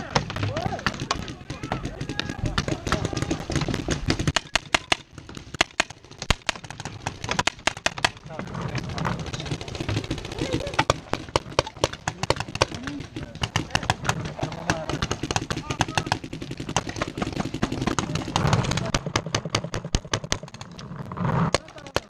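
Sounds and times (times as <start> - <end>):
paintball markers firing: 0.0 - 22.0.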